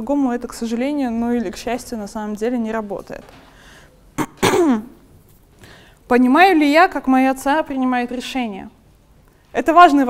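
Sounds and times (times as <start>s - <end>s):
person clearing throat: 4.2s - 5.0s.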